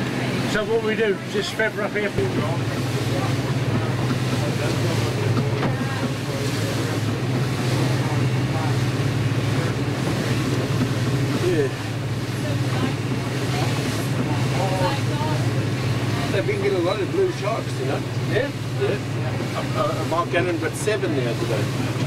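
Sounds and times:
boat engine droning: 0.0 - 22.0
wind and water rushing along hull: 0.0 - 22.0.

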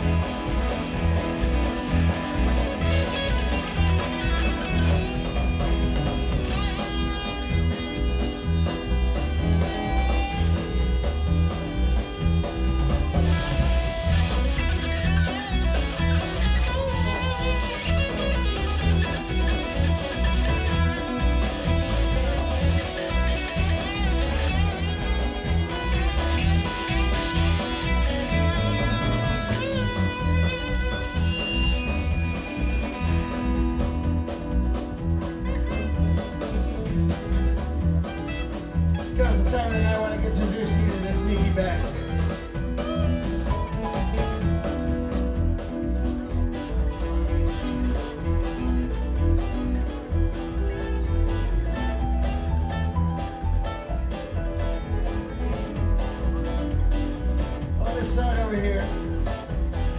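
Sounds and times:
bass guitar: 0.0 - 59.9
drums with steady beat: 0.0 - 59.9
electric guitar: 0.0 - 59.9
keyboards: 0.0 - 59.9.

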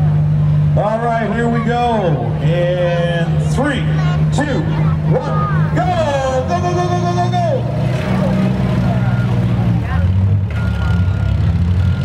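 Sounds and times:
car engines revving: 0.0 - 12.0
long drawn-out shout: 3.9 - 7.8.

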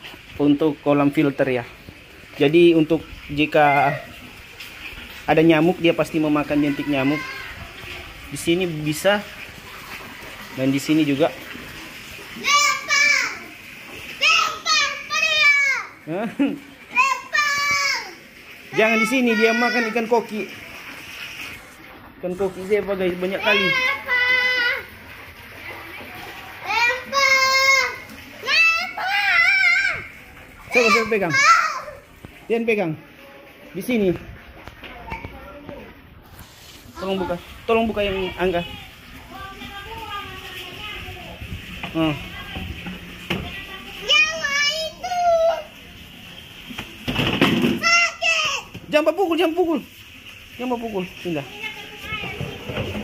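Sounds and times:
child shouting: 3.6 - 4.1, 6.6 - 7.6, 12.4 - 13.5, 14.2 - 16.0, 16.9 - 18.2, 18.8 - 20.1, 23.4 - 24.9, 26.6 - 30.1, 30.7 - 32.0, 44.0 - 45.7, 47.8 - 48.7.

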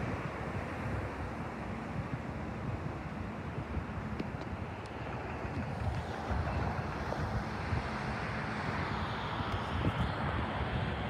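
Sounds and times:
wind buffeting microphone: 0.0 - 11.0
electric train approaching: 4.0 - 11.0.

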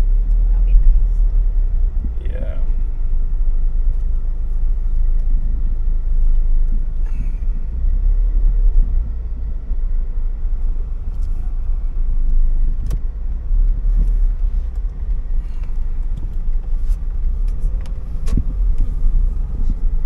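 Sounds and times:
car engine and tyres rumbling: 0.0 - 20.0.

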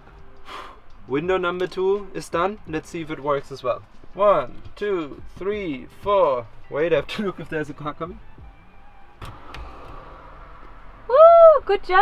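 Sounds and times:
faint background music: 0.0 - 12.0
low hum: 8.2 - 12.0
van window hinge clicks: 9.2 - 10.8.

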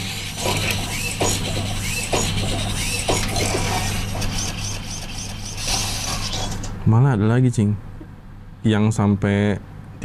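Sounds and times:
toy robot servos whirring: 0.0 - 6.7.

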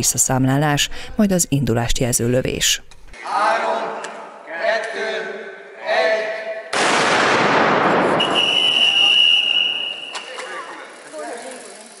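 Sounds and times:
starting gun shot: 6.7 - 8.8
steady high whistle tone: 8.2 - 10.5.

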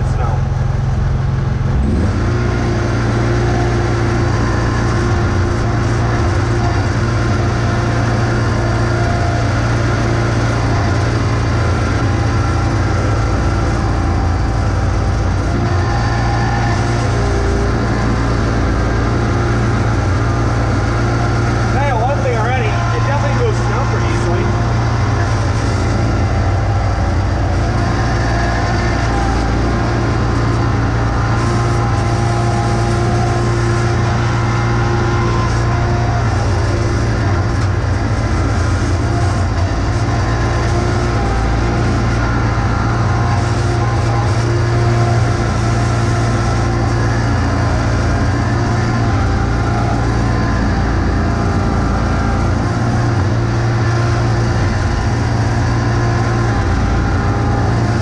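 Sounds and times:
garden tractor engine running: 0.0 - 58.0.

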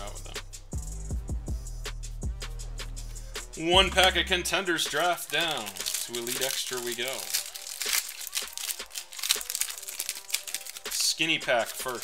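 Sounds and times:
card pack wrapper crinkling and tearing: 4.7 - 12.0.

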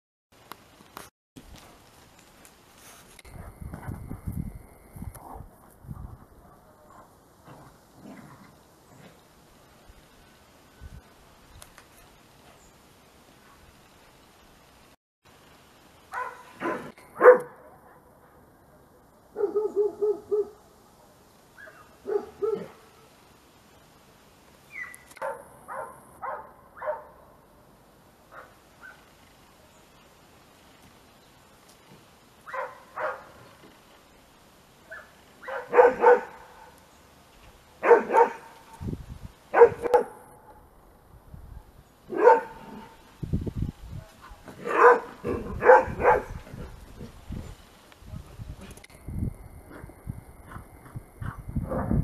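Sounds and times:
dogs barking: 16.1 - 18.0, 19.4 - 20.6, 21.6 - 22.9, 25.2 - 27.2, 32.5 - 33.4, 34.9 - 36.7, 37.8 - 38.6, 39.5 - 40.2, 42.1 - 43.0, 44.6 - 46.7.

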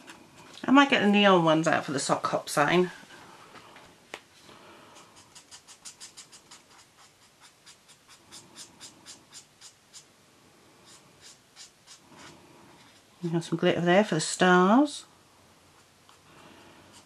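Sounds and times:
marker scratching on paper: 5.0 - 10.1, 10.8 - 13.0.

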